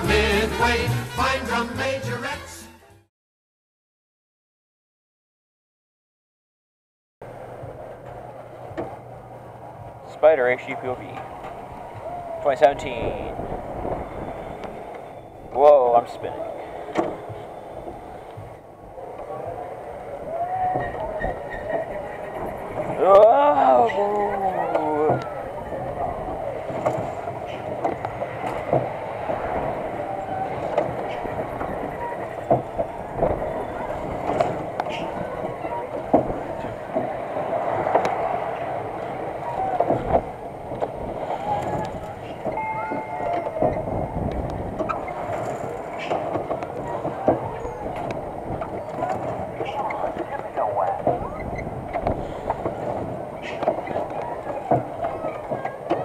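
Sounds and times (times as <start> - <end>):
ride car rattling and clanking: 7.2 - 56.0
voices: 7.4 - 56.0.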